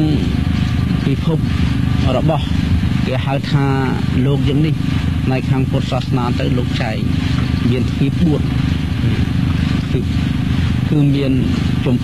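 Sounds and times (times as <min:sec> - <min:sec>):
man talking: 0:00.0 - 0:12.0
steady low hum: 0:00.0 - 0:12.0.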